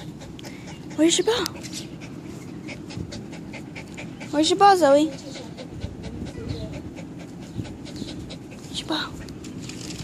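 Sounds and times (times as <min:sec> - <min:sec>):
dog panting: 0:00.0 - 0:09.6.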